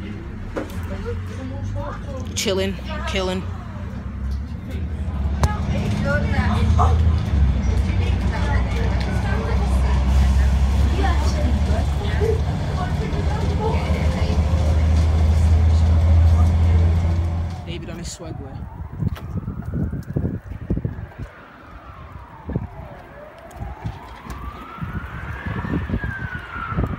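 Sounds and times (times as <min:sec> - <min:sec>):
bus engine and road rumble: 0:00.0 - 0:26.9
siren wailing: 0:17.5 - 0:26.9.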